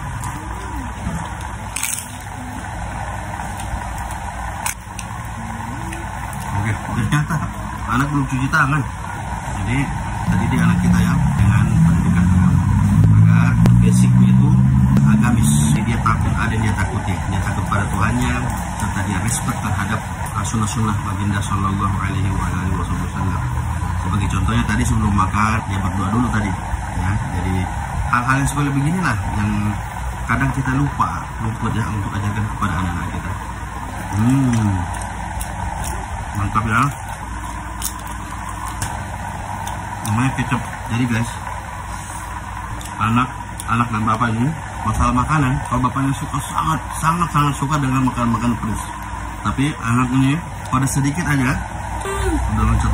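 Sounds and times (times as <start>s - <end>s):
low mechanical hum: 0.0s - 52.9s
vehicle engine running: 0.0s - 52.9s.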